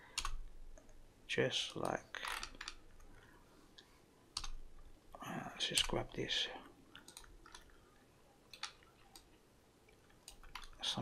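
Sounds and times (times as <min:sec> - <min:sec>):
low room hiss: 0:00.0 - 0:11.0
computer mouse clicks: 0:00.1 - 0:01.0, 0:03.8 - 0:04.6, 0:06.9 - 0:07.8, 0:08.5 - 0:09.3, 0:09.9 - 0:10.8.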